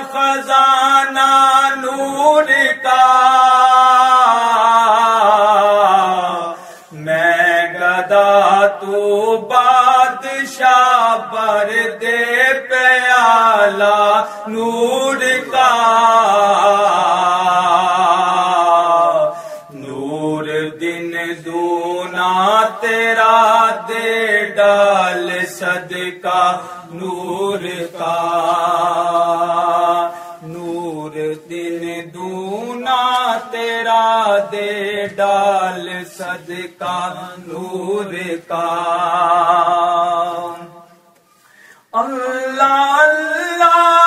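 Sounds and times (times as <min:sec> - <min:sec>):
man singing devotional song: 0:00.0 - 0:44.0.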